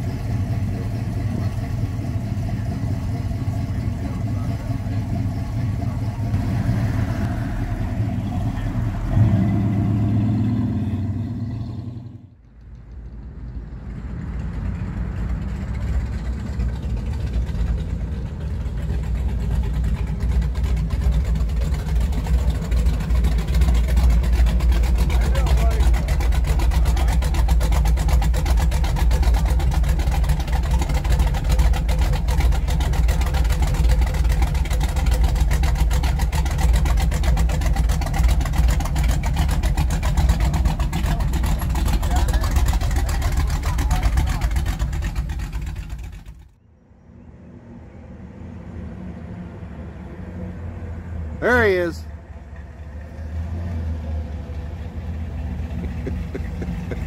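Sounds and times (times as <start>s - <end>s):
car engine idling: 0.0s - 46.6s, 49.8s - 57.0s.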